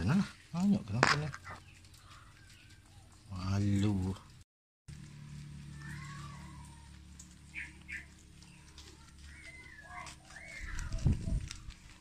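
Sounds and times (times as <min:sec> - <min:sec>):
rabbits munching leaves: 0:00.0 - 0:12.0
gliding chirp calls: 0:07.4 - 0:11.4.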